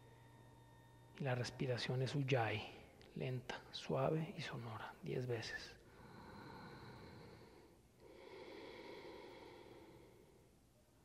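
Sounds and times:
soft throat breathing: 5.8s - 10.6s.

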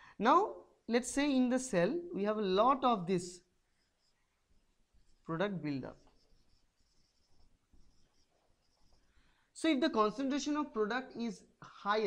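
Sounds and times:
marker squeaking on whiteboard: 3.7s - 9.3s.

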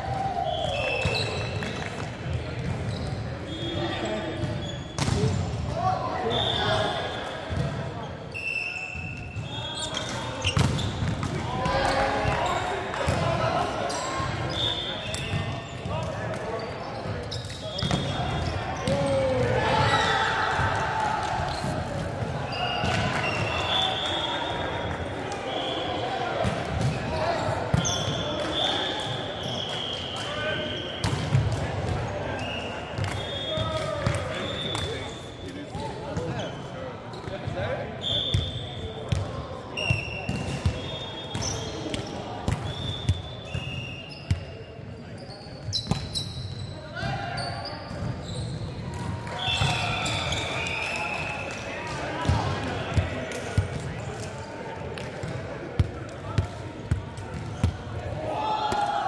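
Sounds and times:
sneakers squeaking on floor: 0.5s - 1.7s, 2.6s - 5.6s, 6.2s - 11.4s, 13.8s - 20.2s, 21.5s - 25.9s, 26.8s - 48.8s, 49.4s - 51.1s.

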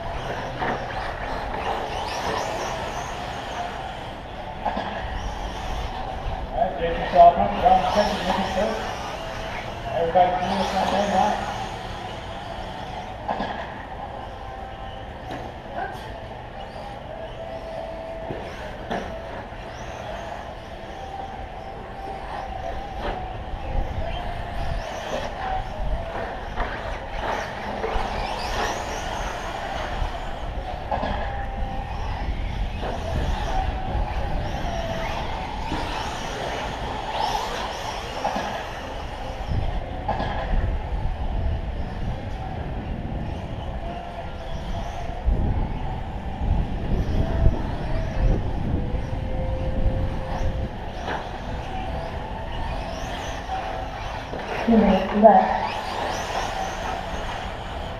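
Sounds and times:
rc truck motors whining: 0.0s - 57.9s.

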